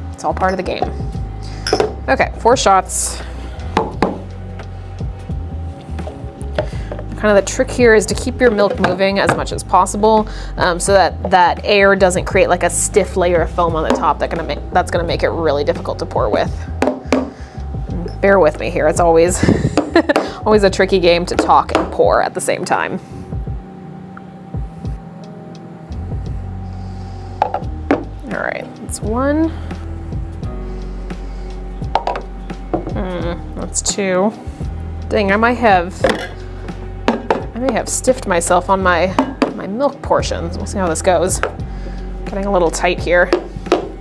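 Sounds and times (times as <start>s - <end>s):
background music: 0.0s - 44.0s
low hum: 0.0s - 44.0s
cup knocking on counter: 1.7s - 2.0s, 3.8s - 4.2s, 16.8s - 17.3s, 27.4s - 28.1s, 32.0s - 32.9s, 37.1s - 37.5s.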